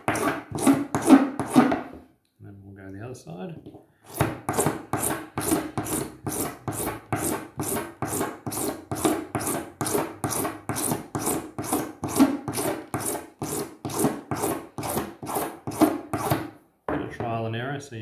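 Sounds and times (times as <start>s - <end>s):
hand file rasping plastic: 0.0s - 1.9s, 4.0s - 16.5s.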